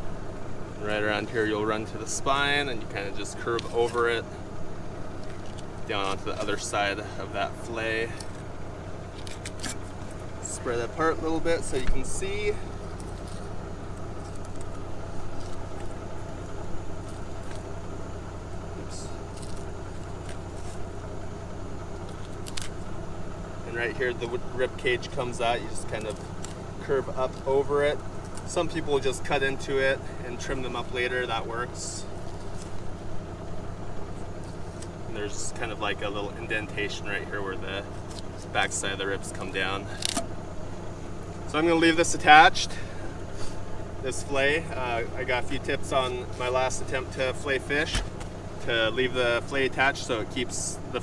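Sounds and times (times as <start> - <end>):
engine idling: 0.0 - 51.0
low hum: 0.0 - 51.0.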